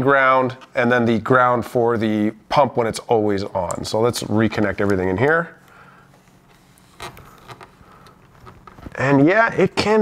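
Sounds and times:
handling of wires and connectors: 0:04.6 - 0:09.2.

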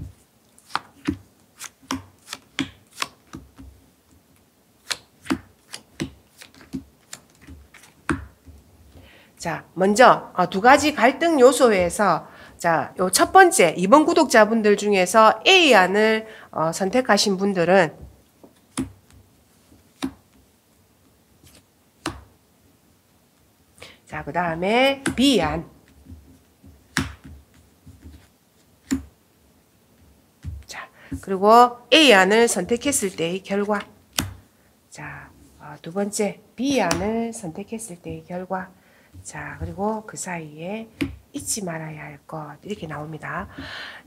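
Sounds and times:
cards clicking and tapping on table: 0:00.6 - 0:03.8, 0:04.8 - 0:08.5, 0:18.4 - 0:19.2, 0:20.0 - 0:20.4, 0:21.5 - 0:22.3, 0:26.1 - 0:29.1, 0:41.0 - 0:41.2.

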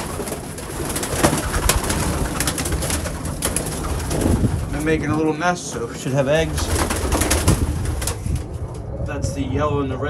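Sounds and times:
pigeons cooing: 0:00.0 - 0:09.8.

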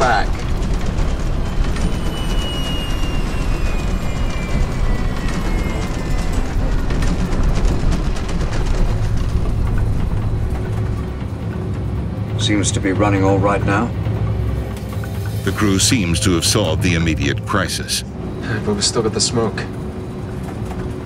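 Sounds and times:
engine whine falling in pitch: 0:00.0 - 0:11.7
film score music: 0:00.0 - 0:21.0
jet engines rumbling: 0:00.0 - 0:21.0.

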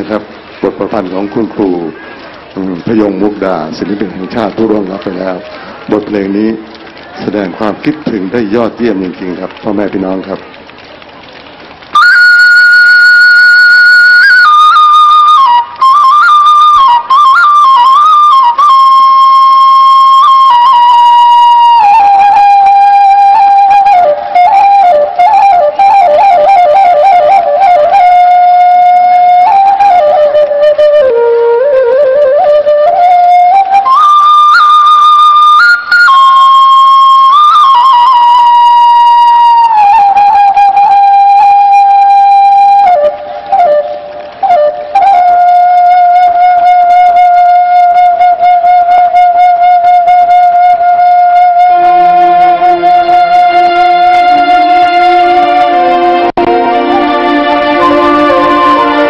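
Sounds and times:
bamboo flute playing a long note: 0:11.9 - 0:59.0.

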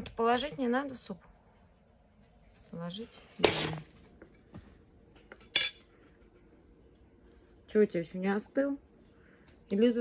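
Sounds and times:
spoon clinking on ceramic bowl: 0:05.4 - 0:05.8.

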